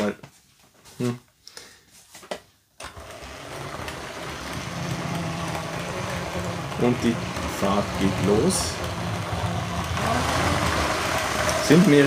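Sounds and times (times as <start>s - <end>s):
wheels rattling on plastic track: 2.8s - 12.0s
toy train motor hum: 2.9s - 12.0s.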